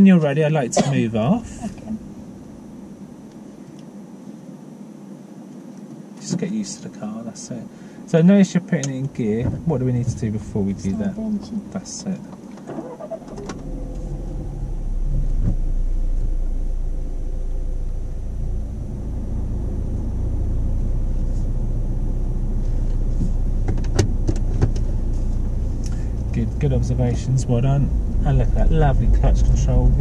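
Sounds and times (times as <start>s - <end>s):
engine and road rumble: 0.0s - 4.2s, 8.7s - 30.0s.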